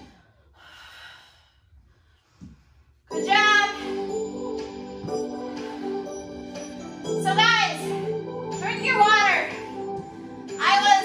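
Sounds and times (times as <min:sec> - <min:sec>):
background music: 0:03.1 - 0:11.0.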